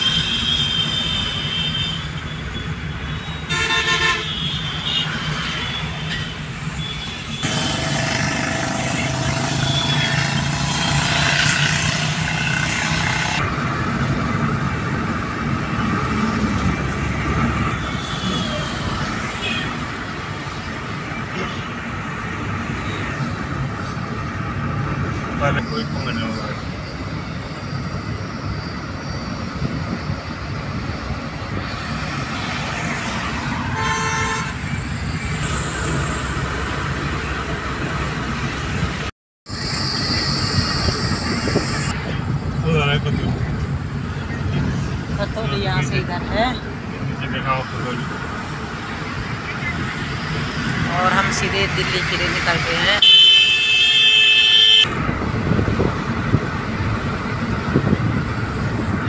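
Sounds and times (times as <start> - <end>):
vehicle horns honking: 0.0 - 2.3, 3.1 - 7.8, 8.4 - 11.2, 33.6 - 34.7, 53.0 - 54.9
road and engine noise inside car: 34.1 - 59.0.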